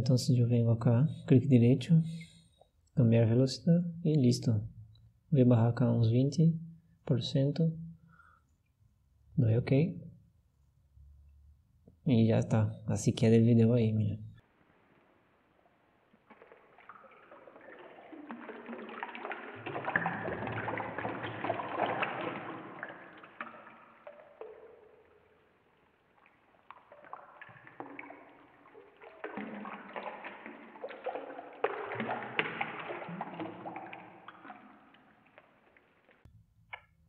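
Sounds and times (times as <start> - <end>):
slowed tap water running: 15.0 - 36.9
slowed hands splashing in sink: 15.6 - 36.3.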